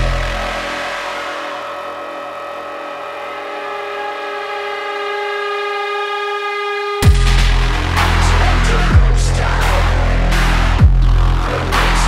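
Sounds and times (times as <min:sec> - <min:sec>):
synth drone: 0:00.0 - 0:12.0
techno kick drum and bass: 0:07.0 - 0:12.0.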